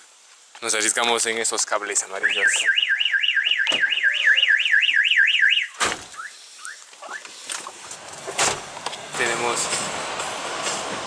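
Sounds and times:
electronic siren wailing: 0:02.1 - 0:06.3.

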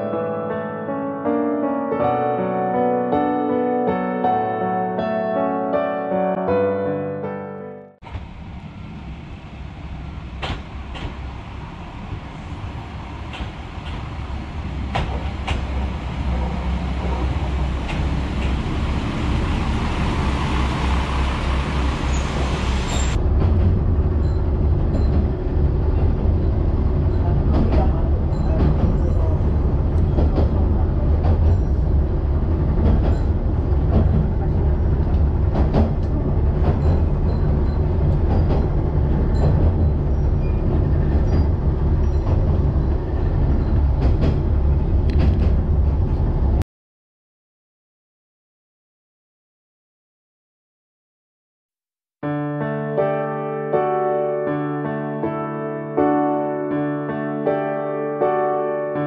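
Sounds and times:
diesel railcar arriving: 0:08.0 - 0:46.6
railcar engine and wheels rumbling: 0:08.0 - 0:46.6.

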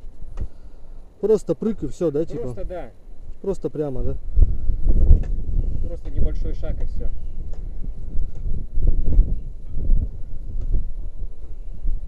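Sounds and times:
wind buffeting microphone: 0:01.7 - 0:12.0.

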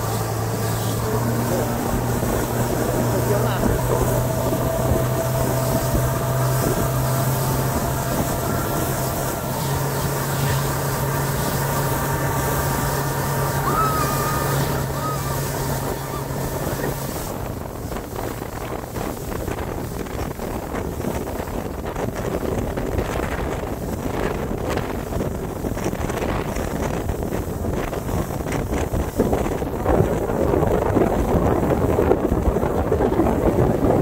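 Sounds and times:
outboard motor running: 0:00.0 - 0:34.0
rush of boat wake: 0:00.0 - 0:34.0
wind buffeting microphone: 0:00.0 - 0:34.0.

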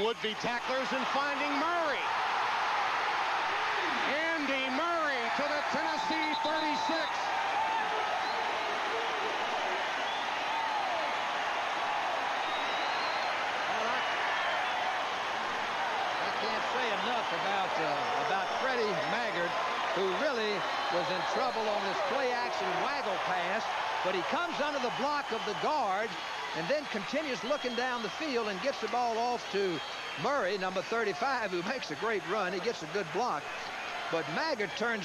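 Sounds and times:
stadium crowd cheering: 0:00.0 - 0:35.0.

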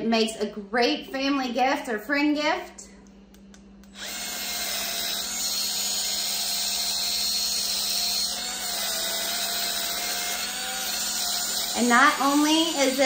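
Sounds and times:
spin scrubber motor whining: 0:03.9 - 0:13.0.

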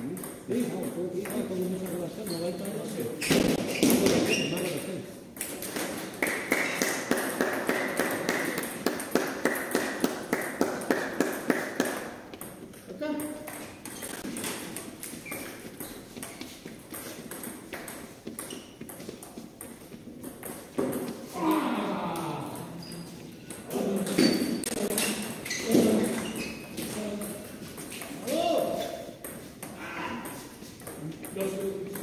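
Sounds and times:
table tennis balls clicking: 0:00.0 - 0:32.0
voices in a hall: 0:21.2 - 0:32.0.

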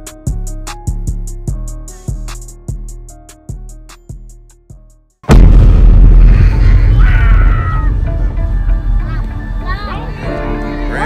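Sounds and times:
music with drum beat: 0:00.0 - 0:05.0
loud boom with low rumble: 0:05.3 - 0:09.4.

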